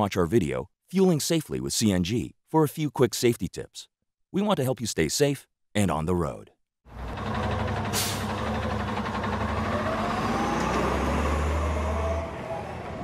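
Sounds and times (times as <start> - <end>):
heavy truck engine running: 6.9 - 13.0
air brake hiss: 7.9 - 8.4.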